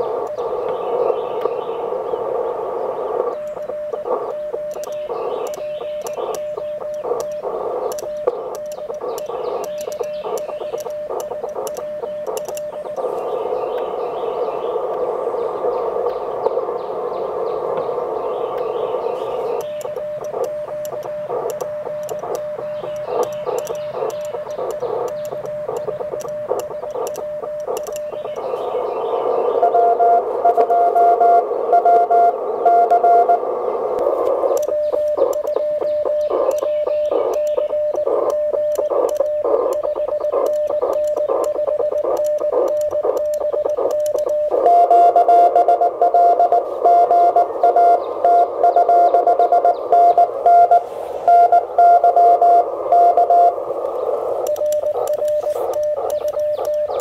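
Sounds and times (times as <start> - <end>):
morse code sidetone: 0.0 - 57.0
radio receiver hiss: 0.0 - 57.0
higher-pitched morse signal: 18.2 - 57.0.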